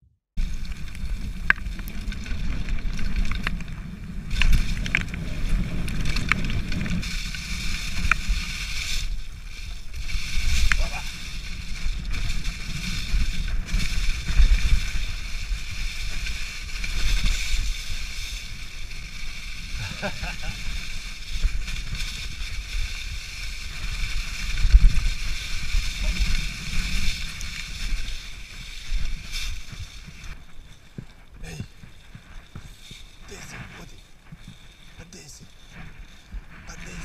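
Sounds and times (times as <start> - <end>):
low rumble of tyres: 0.4 - 33.2
bike rattles and clicks: 0.4 - 37.0
wind on microphone: 0.4 - 37.0.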